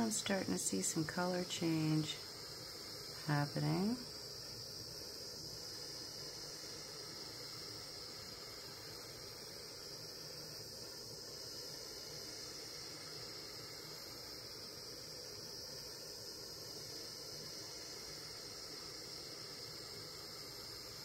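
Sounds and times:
torch flame hissing: 0:00.0 - 0:21.0.

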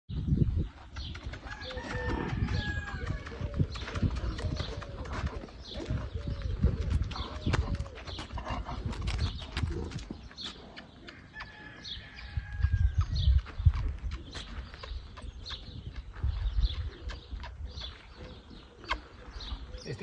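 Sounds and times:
horse hooves on dirt: 0:00.2 - 0:20.0
bird calls: 0:00.9 - 0:12.2, 0:13.0 - 0:20.0
footsteps on dirt: 0:01.5 - 0:08.4, 0:12.3 - 0:19.8.

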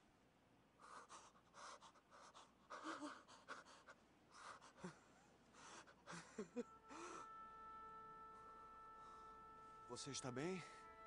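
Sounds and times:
person panting: 0:00.8 - 0:07.3.

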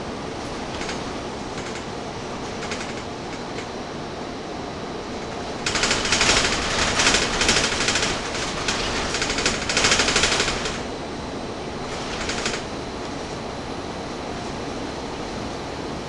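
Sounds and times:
bus engine rumble: 0:00.0 - 0:16.0
bus body rattling: 0:00.2 - 0:04.1, 0:04.8 - 0:13.5.

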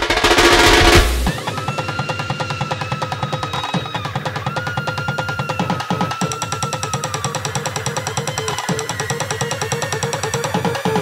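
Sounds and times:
music with fast beat: 0:00.0 - 0:11.0.

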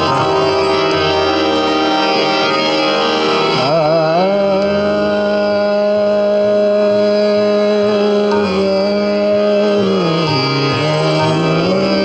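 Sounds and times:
continuous drone: 0:00.0 - 0:12.0
singer holding long note: 0:00.0 - 0:12.0.

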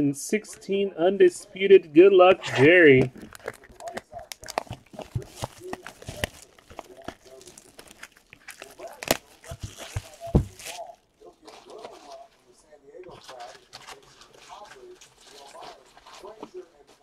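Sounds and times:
plastic wrap tearing and crinkling: 0:02.5 - 0:12.3.

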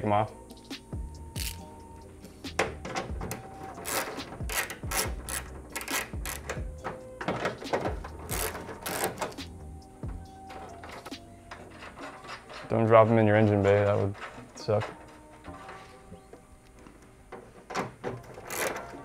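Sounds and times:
quiet background music: 0:00.0 - 0:19.0
ratchet clicking: 0:01.4 - 0:01.6, 0:03.7 - 0:06.9, 0:07.6 - 0:09.5, 0:18.4 - 0:19.0.

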